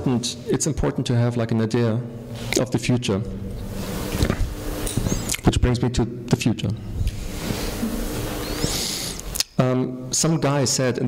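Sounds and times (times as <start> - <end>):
steady rushing hiss: 3.4 - 5.2, 7.1 - 9.4.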